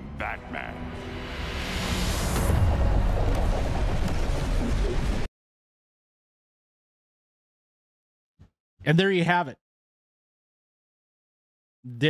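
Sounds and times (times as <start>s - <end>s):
film music: 0.0s - 5.3s.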